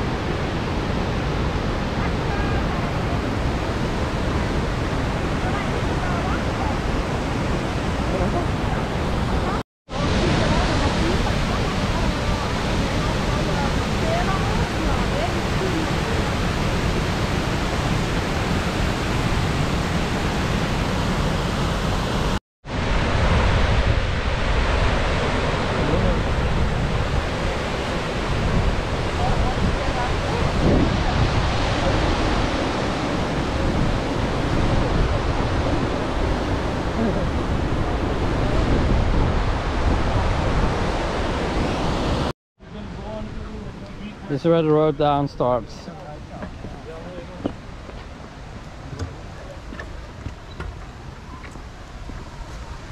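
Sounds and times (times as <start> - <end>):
waterfall rushing: 0.0 - 52.9.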